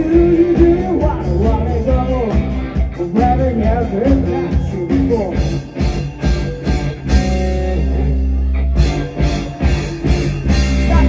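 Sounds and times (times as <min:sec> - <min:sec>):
lead vocal singing: 0:00.0 - 0:05.4, 0:10.8 - 0:11.0
bass guitar: 0:00.0 - 0:11.0
drums: 0:00.0 - 0:11.0
electric guitars: 0:00.0 - 0:11.0.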